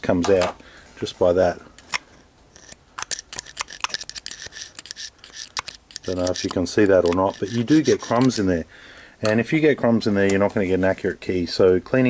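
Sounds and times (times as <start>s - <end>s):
metal spike scraping metal: 1.8s - 8.5s.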